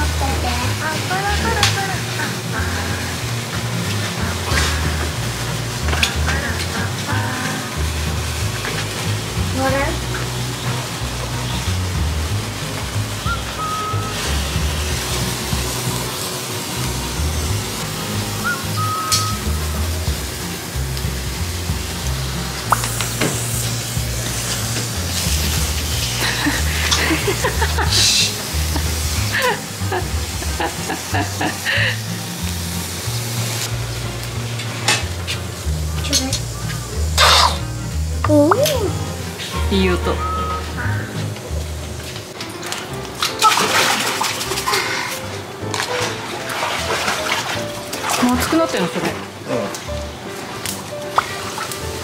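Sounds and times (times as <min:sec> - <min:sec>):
sparklers fizzing and crackling: 0:00.0 - 0:52.0.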